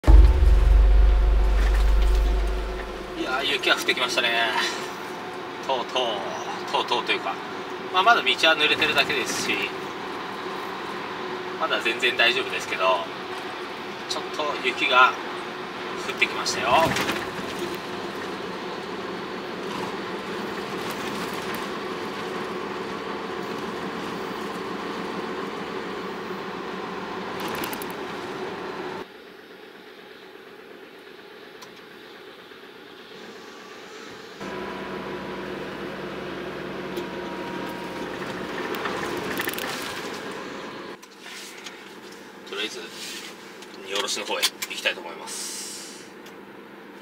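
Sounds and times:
steady low drone: 0.0s - 3.9s
truck engine hum: 0.0s - 5.6s, 34.4s - 41.0s
tyre noise on wet road: 16.8s - 26.0s, 37.7s - 40.6s.

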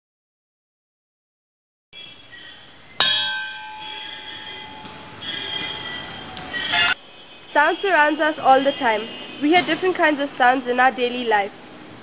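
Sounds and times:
metal bell ringing: 3.0s - 7.0s.

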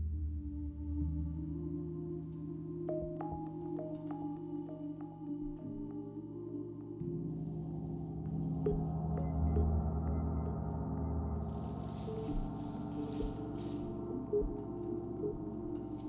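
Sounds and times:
soft keyboard notes: 8.2s - 16.0s.

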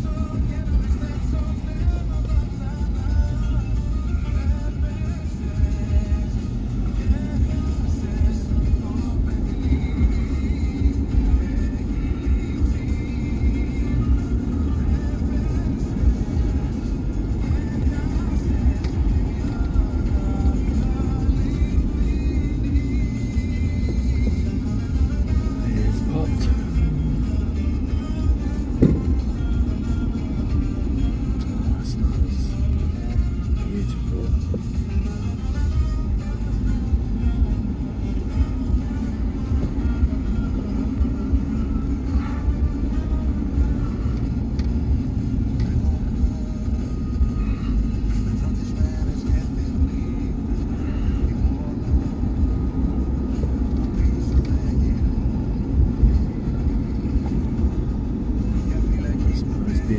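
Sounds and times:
car road and engine rumble: 0.0s - 59.9s
music playing: 0.0s - 59.9s.

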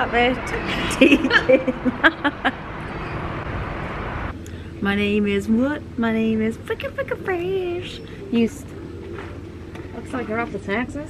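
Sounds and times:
outdoor street noise: 0.0s - 11.0s.

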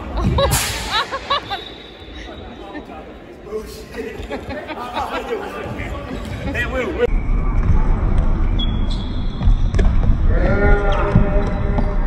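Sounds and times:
shoe squeak: 8.4s - 10.0s.

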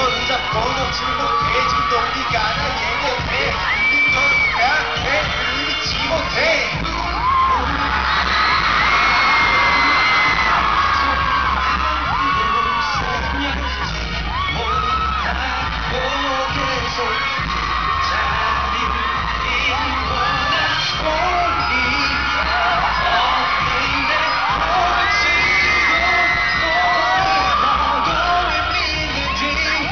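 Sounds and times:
fans screaming: 0.0s - 29.9s
pop dance track over sound system: 0.0s - 29.9s.

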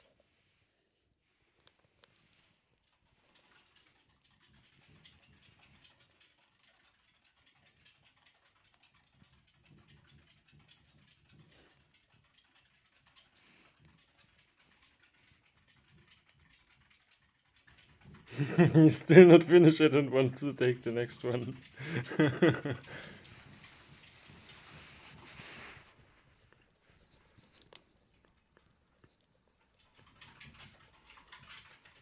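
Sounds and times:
pet degus nibbling and crunching: 1.6s - 32.0s.

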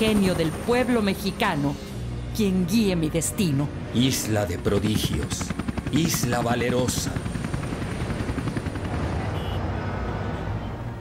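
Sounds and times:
helicopter rotor chop: 0.0s - 10.0s.

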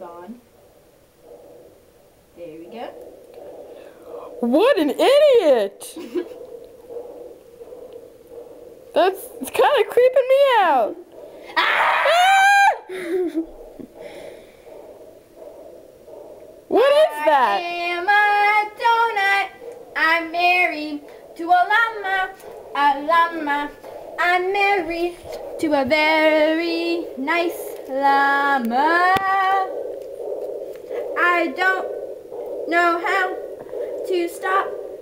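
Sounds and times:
faint breathy sounds: 0.0s - 12.2s, 12.8s - 35.0s
steady hum: 0.0s - 35.0s.

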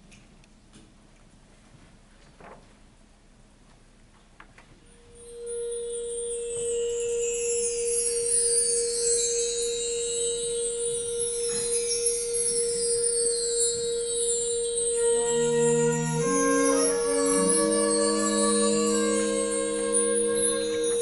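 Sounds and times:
shimmering high chimes: 5.2s - 21.0s.

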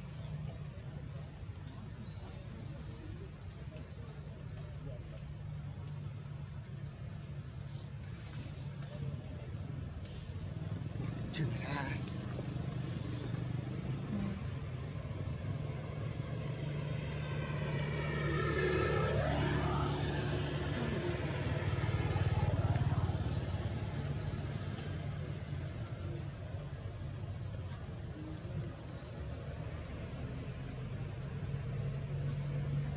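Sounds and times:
low hum of traffic: 0.0s - 32.9s.

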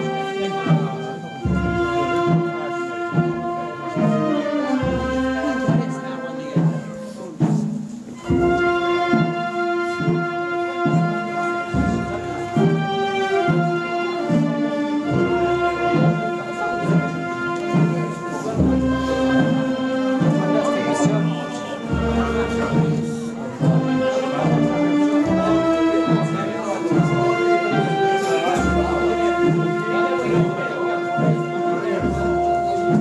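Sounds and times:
brass band playing funeral march: 0.0s - 33.0s
murmuring voices: 0.0s - 33.0s.

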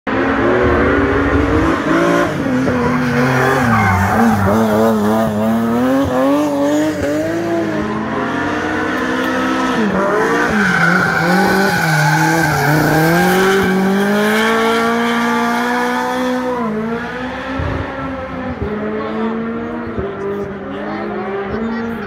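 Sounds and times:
rally car engine revving: 0.1s - 22.0s.

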